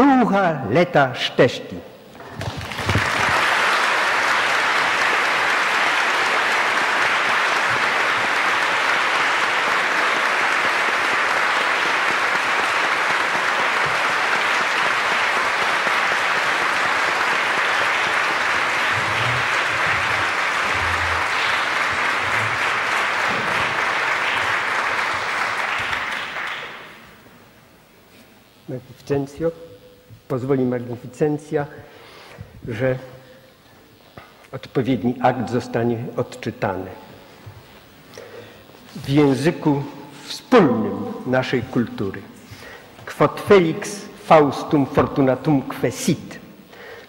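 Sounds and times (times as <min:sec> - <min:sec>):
audience applauding: 0:02.2 - 0:27.2.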